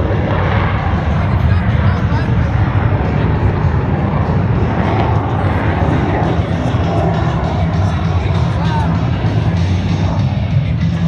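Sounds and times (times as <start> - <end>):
jet engines passing overhead: 0.0 - 11.0.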